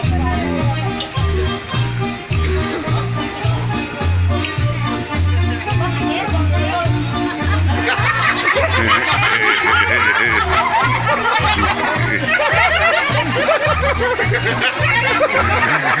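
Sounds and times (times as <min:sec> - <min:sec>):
dance music with pulsing bass: 0:00.0 - 0:00.9
crowd laughing and calling out: 0:00.0 - 0:04.3, 0:05.6 - 0:16.0.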